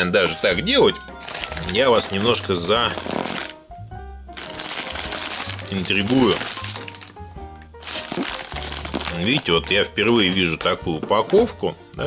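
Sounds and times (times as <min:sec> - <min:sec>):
plastic mailer bag crinkling: 0:01.2 - 0:03.6, 0:04.4 - 0:07.1, 0:07.8 - 0:10.7.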